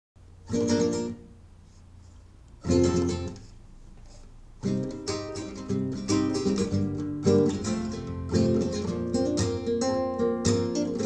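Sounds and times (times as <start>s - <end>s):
classical guitar strumming chords: 0.4s - 1.8s, 2.6s - 3.6s, 4.6s - 11.0s.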